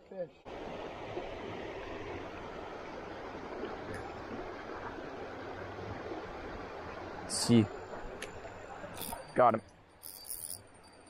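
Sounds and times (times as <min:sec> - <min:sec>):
creek water rushing: 0:00.3 - 0:10.5.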